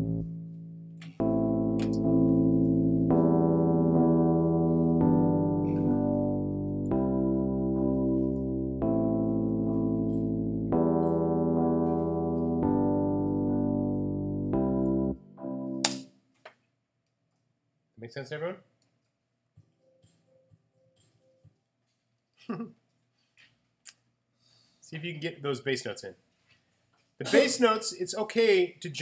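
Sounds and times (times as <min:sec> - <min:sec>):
electric piano chords: 0:00.0 - 0:16.0
sharp click: 0:15.8 - 0:16.1.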